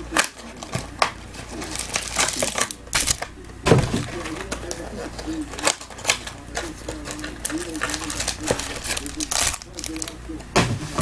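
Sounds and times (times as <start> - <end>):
foil packs crinkling and ripping: 0.0 - 3.3, 4.0 - 10.2.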